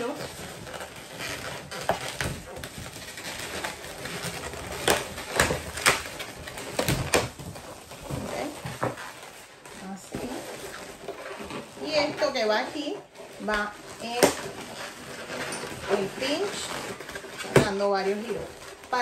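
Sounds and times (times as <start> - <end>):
balloons rubbing and squeaking: 0.0 - 19.0.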